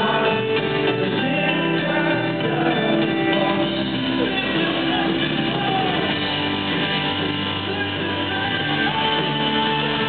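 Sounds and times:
rock worship band playing live: 0.0s - 10.0s.

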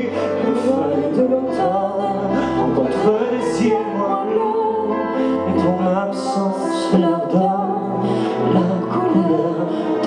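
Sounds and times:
man and woman singing: 0.0s - 10.0s
pianos playing: 0.0s - 10.0s.

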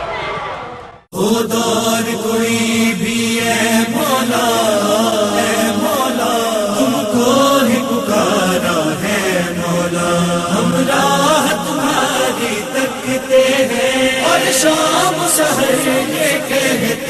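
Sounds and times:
voices chanting a lament: 1.1s - 17.0s.

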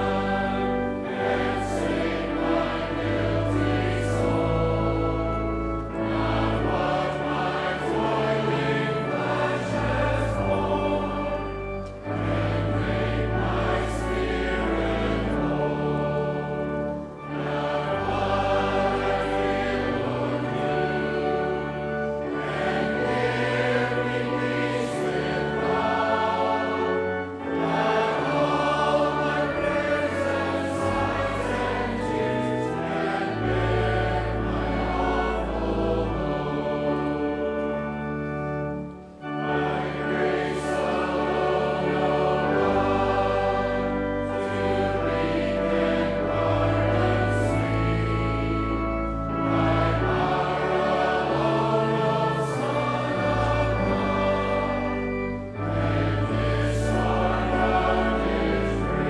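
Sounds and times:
congregation singing a hymn: 0.0s - 59.0s.

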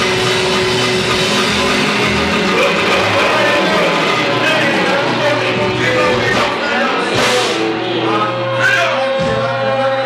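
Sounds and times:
crowd noise: 0.0s - 10.0s
music from stage speakers: 0.0s - 10.0s.

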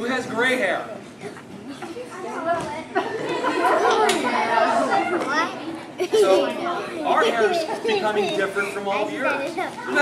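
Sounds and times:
children chattering: 1.2s - 10.0s.

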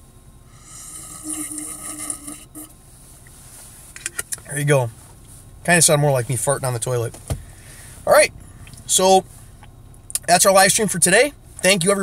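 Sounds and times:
person slurping from glass bottle: 0.7s - 2.7s.

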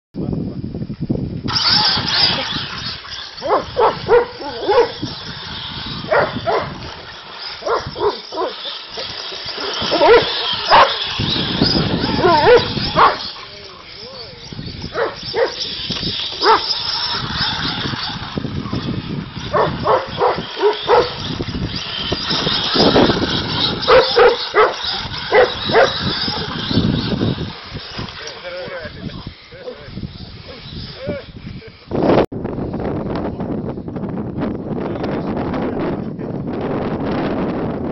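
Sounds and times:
toy car motor whine: 1.4s - 32.2s
dog barking: 3.4s - 4.9s, 9.9s - 11.0s, 12.2s - 13.2s, 15.0s - 15.6s, 16.4s - 16.6s, 19.5s - 21.1s, 23.9s - 24.7s, 25.3s - 26.0s.

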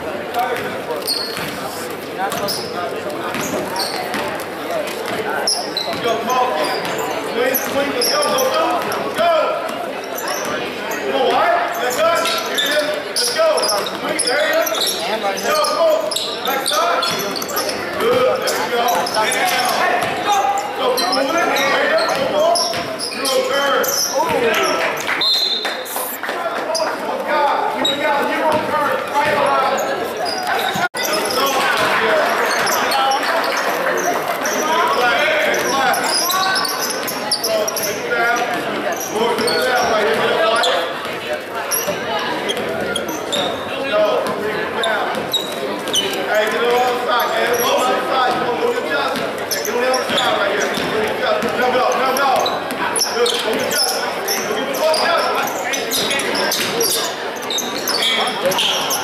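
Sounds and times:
crowd chatter: 0.0s - 59.0s
basketball dribbling: 0.5s - 1.6s, 50.0s - 51.7s.

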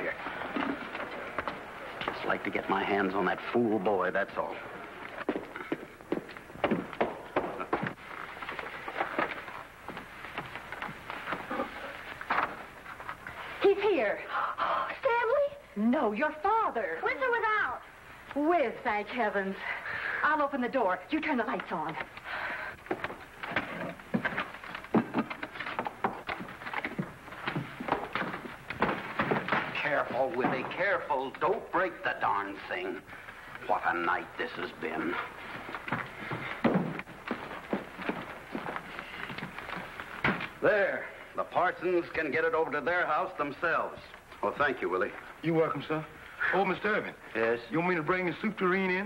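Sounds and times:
footsteps on hard floor: 0.0s - 2.7s, 4.8s - 13.4s, 22.8s - 32.0s, 33.0s - 40.6s
wooden furniture bumping: 22.9s - 30.8s, 35.8s - 38.7s.

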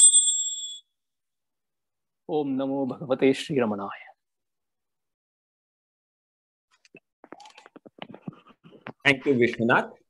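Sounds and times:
small metal bell ringing: 0.0s - 0.9s.

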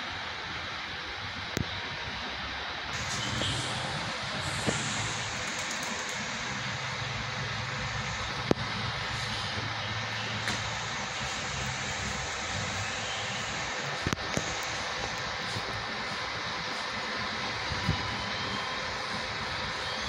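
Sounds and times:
outdoor noise: 0.0s - 20.0s
bus diesel engine running: 2.9s - 20.0s.

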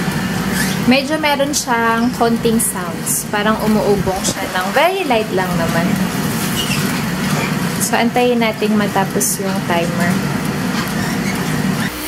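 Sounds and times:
air fryer fan whirring: 0.0s - 12.0s.

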